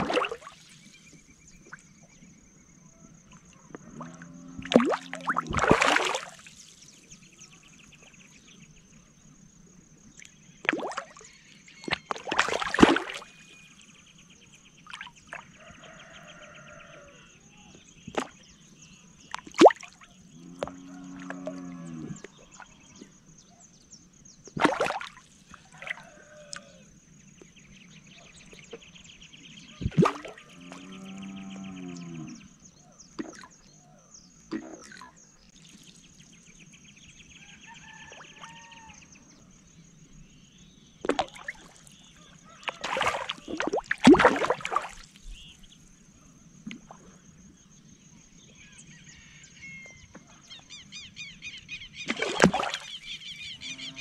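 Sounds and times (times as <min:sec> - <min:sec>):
fish splashing at water surface: 0:00.0 - 0:00.8, 0:04.6 - 0:06.9, 0:10.6 - 0:13.5, 0:24.6 - 0:26.7, 0:41.0 - 0:45.4, 0:52.1 - 0:53.0.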